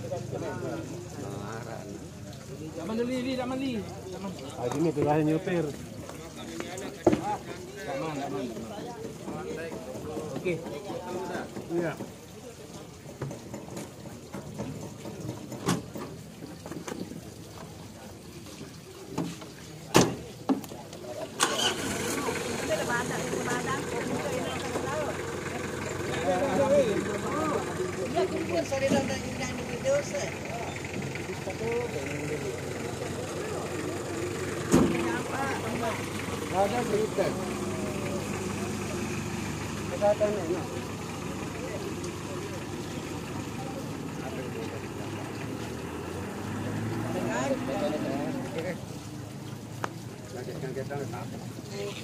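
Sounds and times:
background voices: 0:16.8 - 0:52.0
engine starting and idling: 0:21.2 - 0:40.6.

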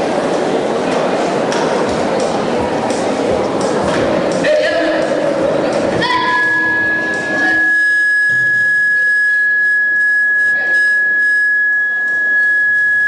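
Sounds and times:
microphone feedback whistle: 0:06.2 - 0:13.0.

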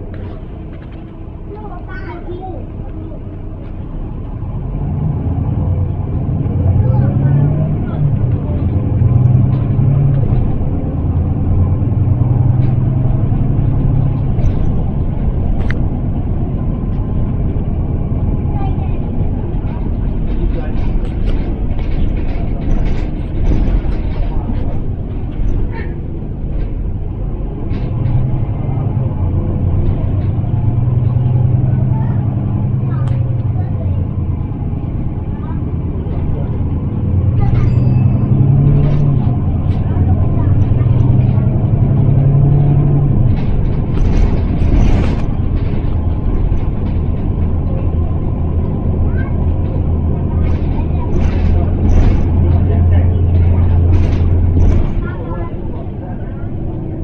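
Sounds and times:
bus diesel engine drone: 0:00.0 - 0:57.0
clicks and rattles: 0:12.2 - 0:17.8, 0:18.6 - 0:33.7, 0:36.0 - 0:56.0.

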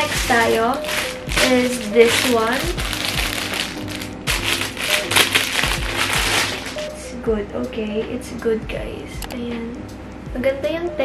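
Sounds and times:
plastic bag crinkling: 0:00.0 - 0:07.0
soft background music with beat: 0:00.0 - 0:11.0.

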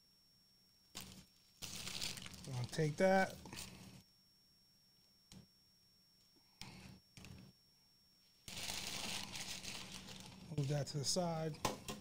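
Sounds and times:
paper crinkling: 0:01.0 - 0:03.8, 0:08.4 - 0:11.0
parchment paper rustling: 0:01.0 - 0:03.8, 0:08.3 - 0:11.2.

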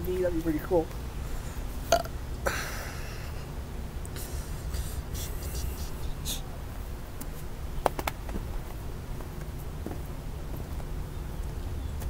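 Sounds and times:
steady low rumble: 0:00.0 - 0:12.0
man's rasping vocal noise: 0:04.2 - 0:06.5.

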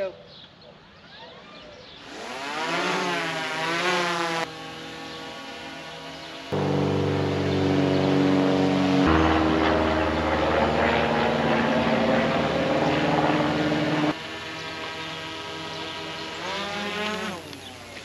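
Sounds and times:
drone propellers whining: 0:04.5 - 0:17.5.

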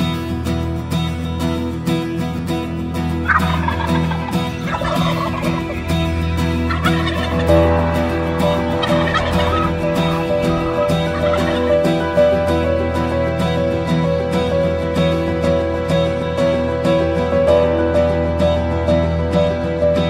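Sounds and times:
instrumental intro music: 0:00.0 - 0:20.0
wild turkey gobbling: 0:03.2 - 0:07.8, 0:08.4 - 0:12.0.

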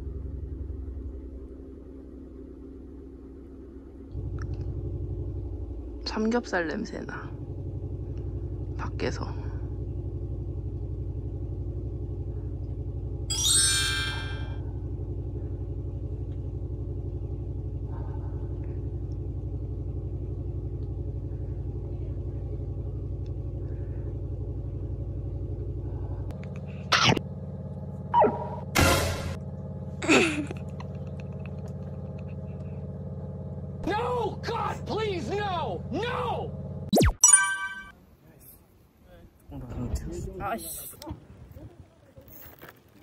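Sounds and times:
swooping boing-like effects: 0:28.2 - 0:29.1, 0:36.9 - 0:37.9.

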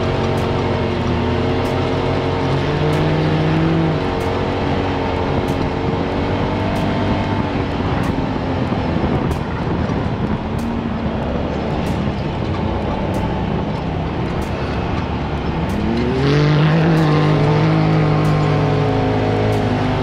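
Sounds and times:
off-road vehicle engine under load: 0:00.0 - 0:20.0.

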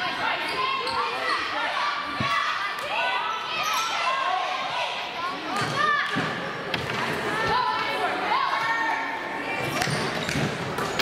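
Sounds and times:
voices calling out in a gym: 0:00.0 - 0:11.0.

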